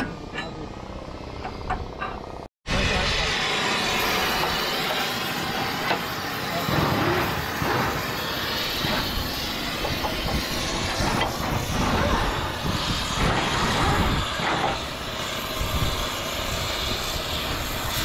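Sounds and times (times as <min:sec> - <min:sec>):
gas cutting torch hissing: 0:02.7 - 0:18.0.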